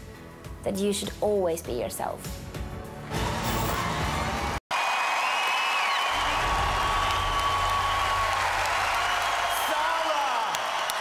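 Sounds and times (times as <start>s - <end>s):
music: 0.0s - 4.6s
audience cheering and applauding: 3.4s - 11.0s
whoops: 4.7s - 11.0s.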